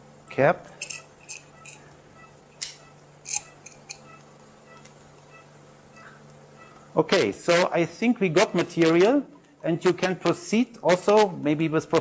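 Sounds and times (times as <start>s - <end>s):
low equipment hum: 0.0s - 12.0s.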